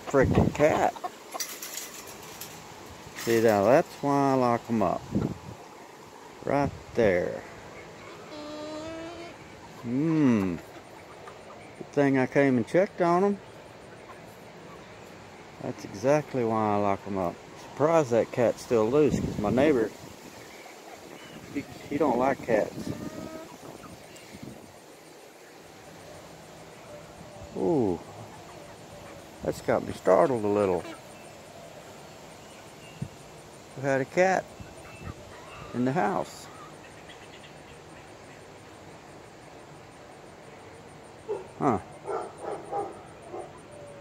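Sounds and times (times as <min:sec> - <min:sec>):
hens clucking: 0:00.0 - 0:05.4, 0:06.6 - 0:24.6, 0:26.6 - 0:31.2
hens calling softly: 0:07.4 - 0:11.9, 0:20.2 - 0:24.6, 0:30.1 - 0:31.5
high insect chirping: 0:19.9 - 0:29.4, 0:30.4 - 0:33.8.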